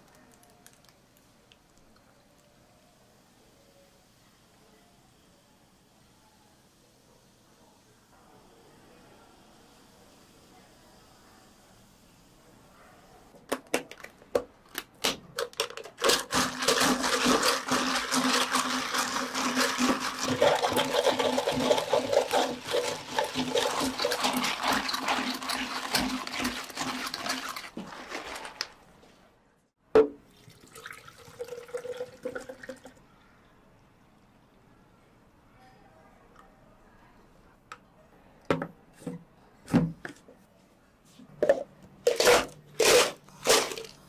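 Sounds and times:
ice clicking in cups: 0:00.0 - 0:02.5, 0:13.5 - 0:28.8, 0:30.4 - 0:33.0, 0:42.1 - 0:44.0
soda fizzing and crackling: 0:00.0 - 0:02.5, 0:15.6 - 0:28.9.

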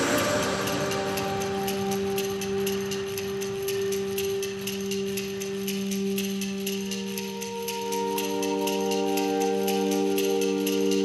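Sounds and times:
held notes music: 0:00.0 - 0:11.0
quick ticking beat: 0:00.0 - 0:11.0.

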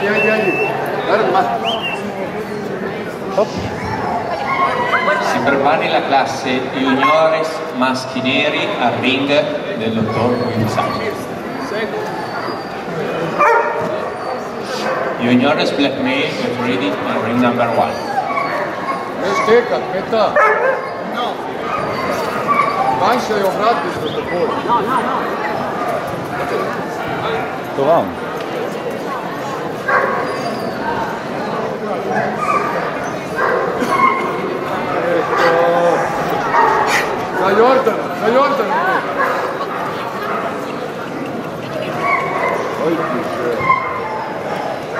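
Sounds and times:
background chatter: 0:00.0 - 0:44.9
dogs barking: 0:06.9 - 0:07.6, 0:10.0 - 0:15.3, 0:17.4 - 0:23.4, 0:29.8 - 0:30.7, 0:32.1 - 0:40.9, 0:41.8 - 0:44.9
dog barking: 0:13.4 - 0:14.0, 0:20.3 - 0:21.0, 0:29.9 - 0:30.3, 0:33.4 - 0:34.3, 0:36.4 - 0:37.2.

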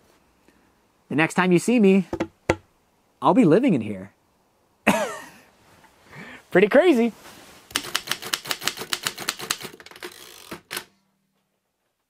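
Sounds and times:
typewriter key strikes: 0:07.7 - 0:09.7.

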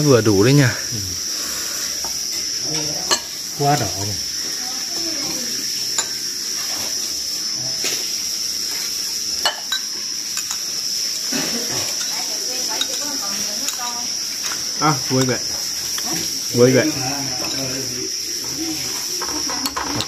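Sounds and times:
crickets chirring: 0:00.0 - 0:20.0
spoon clinking on ceramic bowls: 0:02.0 - 0:04.2, 0:05.9 - 0:06.2, 0:09.4 - 0:10.7, 0:11.5 - 0:16.3, 0:17.3 - 0:17.8, 0:19.2 - 0:20.0.

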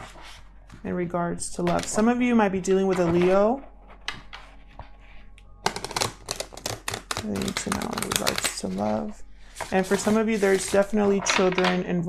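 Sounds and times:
cards being shuffled: 0:05.7 - 0:09.0.

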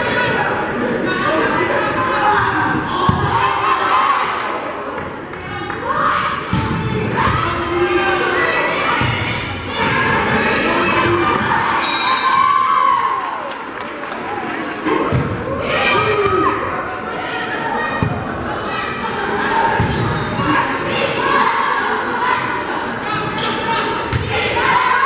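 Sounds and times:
crowd voices: 0:00.0 - 0:25.0.

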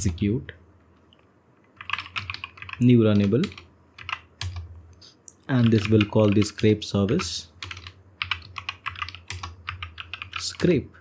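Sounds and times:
keyboard typing clicks: 0:01.7 - 0:04.7, 0:07.2 - 0:10.4.

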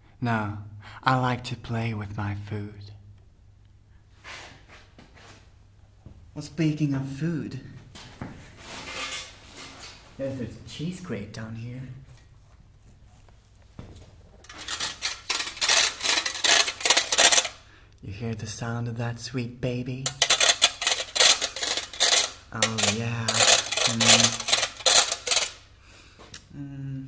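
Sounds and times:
cheese grater scraping: 0:14.4 - 0:17.6, 0:20.1 - 0:25.6
metal tools clattering: 0:14.4 - 0:17.6, 0:20.1 - 0:25.6.

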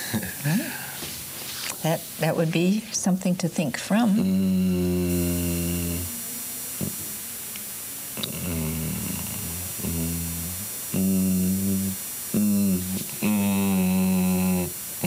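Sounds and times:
man humming: 0:00.0 - 0:01.0, 0:04.2 - 0:15.0.

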